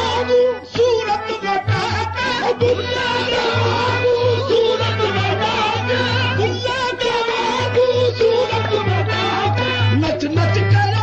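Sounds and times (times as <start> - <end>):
harmonium accompaniment: 0.0 - 11.0
man singing melismatic runs: 0.0 - 11.0.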